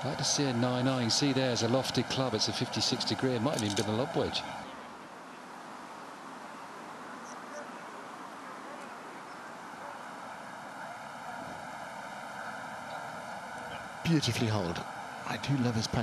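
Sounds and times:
outdoor background hiss: 0.0 - 16.0.

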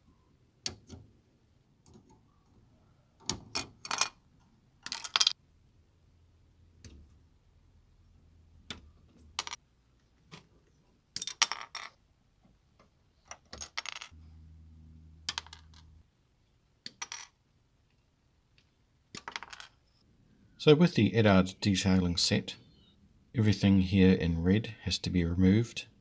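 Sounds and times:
faint low hum: 13.8 - 19.0.

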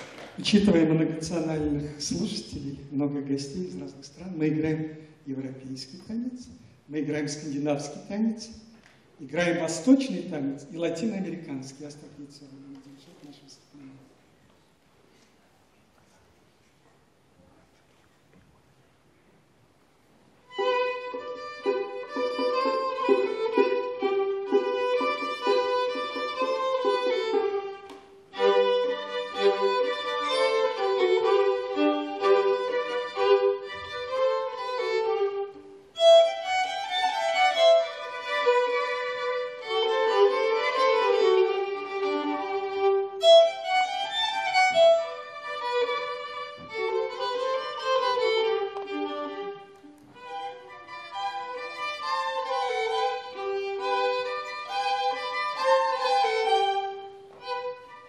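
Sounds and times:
two violins playing: 20.5 - 58.0.

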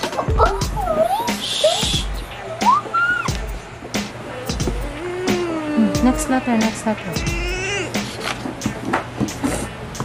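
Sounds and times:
hands shuffling paper: 8.0 - 9.7.

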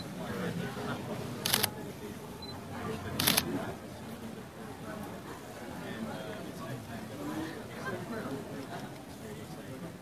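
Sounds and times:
murmur of voices: 0.0 - 10.0
camera shutter click: 1.4 - 1.7, 3.2 - 3.5.

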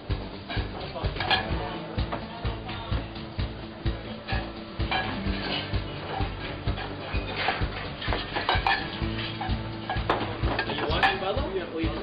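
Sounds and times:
music with a regular beat: 0.0 - 12.0
plates and cutlery clinking: 0.5 - 2.2, 4.2 - 11.4.

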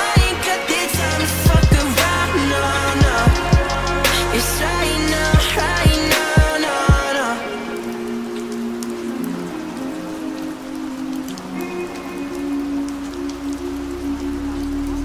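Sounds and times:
sustained synth chords: 0.0 - 6.2, 7.2 - 15.0
steady rain: 0.0 - 15.0
low bass: 1.0 - 6.2.

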